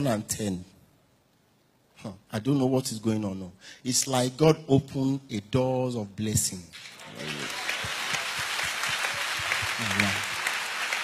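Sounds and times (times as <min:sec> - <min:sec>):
crowd applauding: 0:06.8 - 0:11.0.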